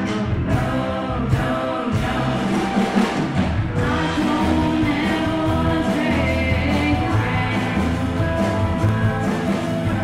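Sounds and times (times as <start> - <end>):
live rock band playing: 0.0 - 10.0
women singing together: 0.4 - 3.2, 3.8 - 10.0.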